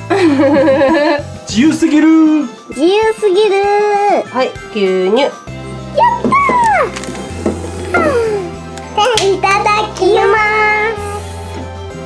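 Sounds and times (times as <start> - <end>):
background music with bass line: 0.0 - 3.0, 4.6 - 12.0.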